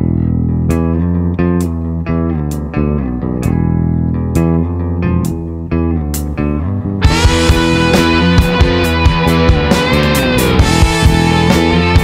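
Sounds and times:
bass guitar and guitar riff: 0.0s - 12.0s.

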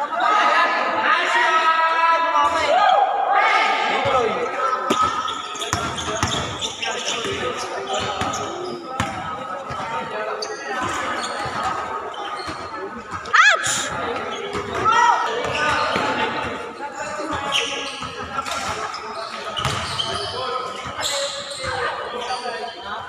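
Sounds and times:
players shouting: 13.3s - 14.2s.

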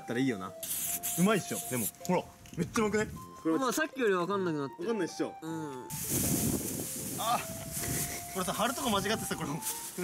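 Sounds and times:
spray paint can hissing: 0.6s - 2.0s.

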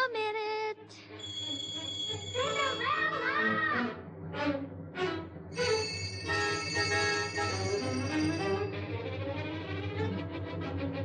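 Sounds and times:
orchestral film score: 1.1s - 11.0s
call bells jangling: 1.2s - 2.9s, 5.6s - 8.7s.

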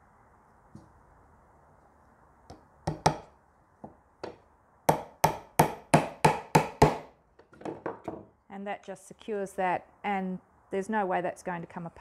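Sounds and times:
hammer striking nail into wood: 2.5s - 3.3s, 4.2s - 8.2s.

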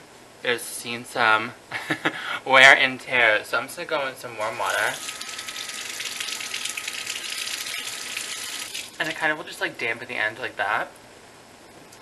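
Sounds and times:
tap water running over brush: 4.7s - 9.0s.

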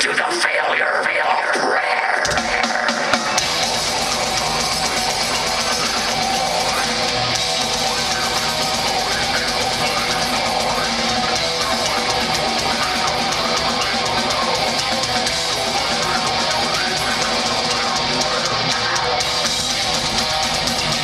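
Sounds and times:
distorted electric guitars: 0.0s - 21.0s
rapid drumming: 2.2s - 21.0s
bass: 2.3s - 21.0s.

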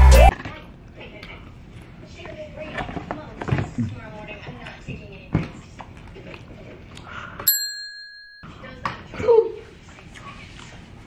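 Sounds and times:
bell-like ding: 7.5s - 8.8s.

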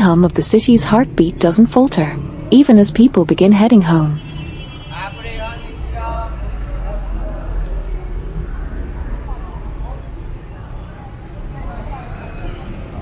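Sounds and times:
passersby talking: 0.0s - 13.0s
vehicle engine rumble: 0.0s - 13.0s.

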